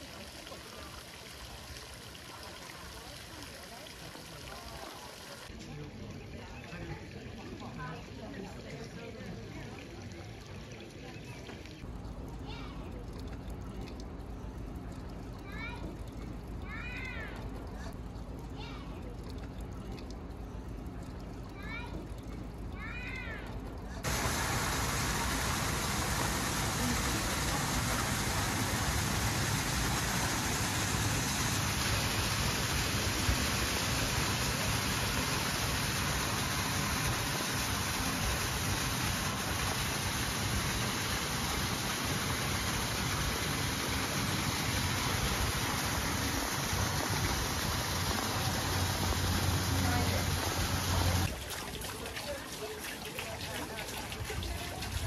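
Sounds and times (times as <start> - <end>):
waterfall into pond: 0.0 - 55.0.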